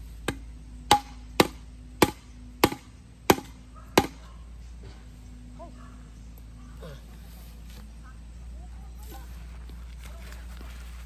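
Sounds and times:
bamboo post being pounded: 0.2s - 4.2s.

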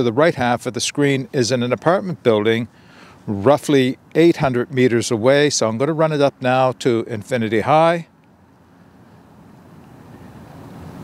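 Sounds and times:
distant road traffic rumble: 0.0s - 11.0s.

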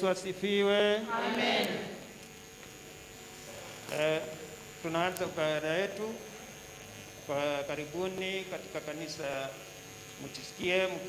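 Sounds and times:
man speaking with echo: 0.0s - 1.2s
electrical hum and hiss: 0.0s - 11.0s.

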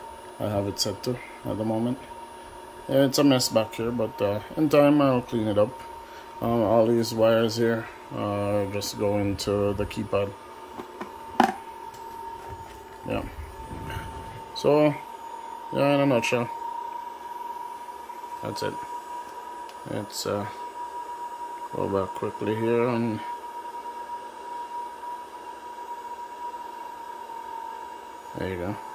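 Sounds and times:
fan whining: 0.0s - 28.9s
low rumble: 12.5s - 14.6s.

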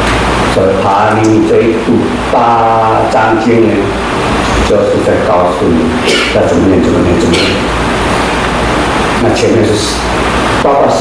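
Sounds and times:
loud steady rumble and hiss: 0.0s - 11.0s
man lecturing: 0.5s - 7.7s, 9.2s - 11.0s.

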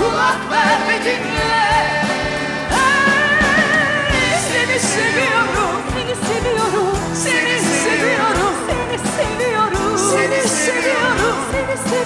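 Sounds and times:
band with steady drum beat: 0.0s - 12.0s
women singing: 0.0s - 12.0s.

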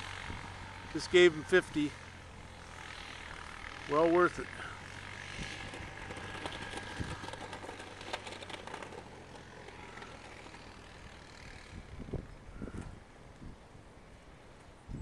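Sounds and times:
engine running with low hum: 0.0s - 15.0s
low bumps: 4.6s - 13.5s.

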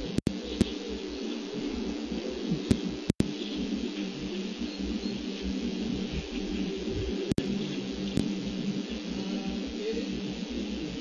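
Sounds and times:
sharp clicks: 0.0s - 0.8s, 2.5s - 3.4s, 7.3s - 8.4s
background rumble and hiss: 0.0s - 11.0s.

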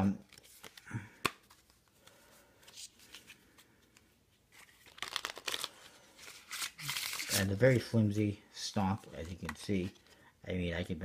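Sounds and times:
cards riffling: 0.3s - 7.9s.

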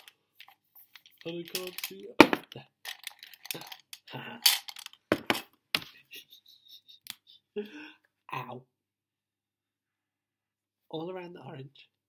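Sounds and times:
pens and pencils rattling in pot: 0.0s - 5.4s.

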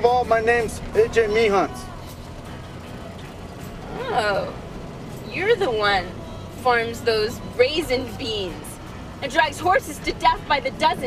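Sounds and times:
road noise: 0.0s - 11.0s
truck engine rumble: 0.0s - 11.0s.

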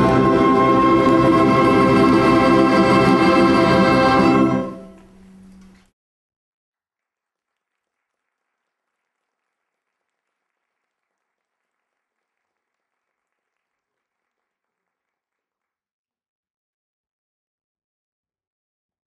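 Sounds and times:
very faint audience applause: 6.9s - 15.6s.

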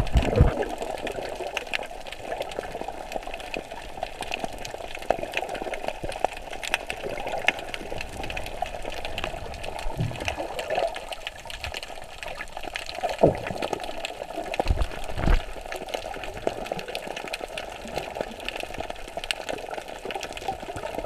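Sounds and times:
low bubbling burst: 0.0s - 1.4s, 7.0s - 11.5s, 13.1s - 15.6s
muffled underwater wash: 0.0s - 21.0s
small crackling clicks: 0.0s - 21.0s.

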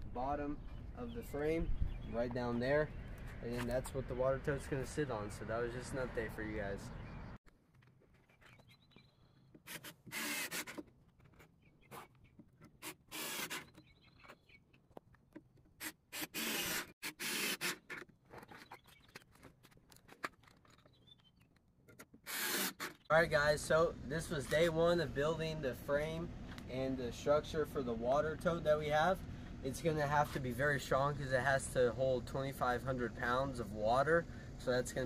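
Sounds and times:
cordless drill driving screws: 9.6s - 10.8s, 12.8s - 13.8s, 15.8s - 18.0s, 22.2s - 23.0s.

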